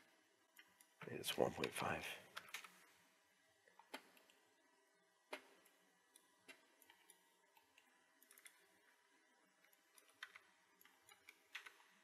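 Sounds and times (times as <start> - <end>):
computer keyboard clicks: 1.6 - 2.8, 5.3 - 8.7, 9.6 - 12.0.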